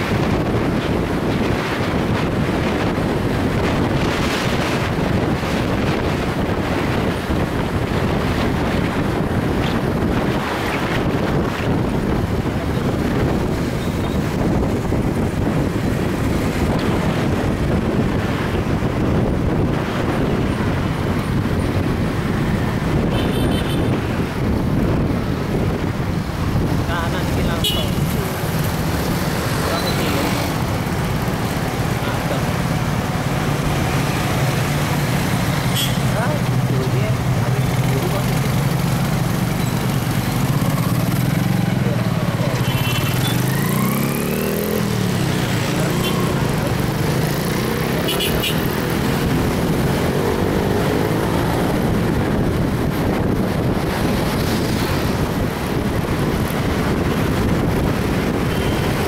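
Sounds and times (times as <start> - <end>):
road noise: 0.0 - 59.0.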